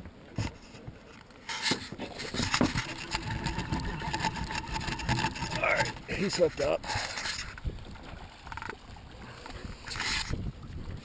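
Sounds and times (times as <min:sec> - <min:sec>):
fishing reel rasping: 0:02.5 - 0:06.1.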